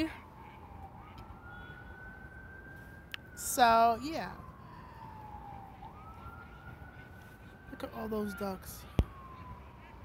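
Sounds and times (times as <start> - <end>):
faint siren wailing: 0.0 - 10.0.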